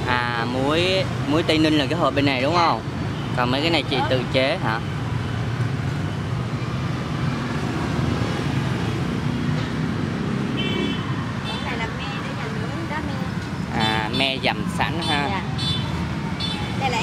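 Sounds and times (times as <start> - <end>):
street traffic rumble: 0.0 - 17.0.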